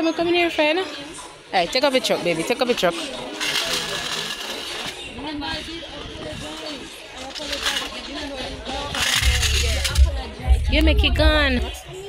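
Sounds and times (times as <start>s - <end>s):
toy car whirring on tile floor: 0.9s - 10.0s.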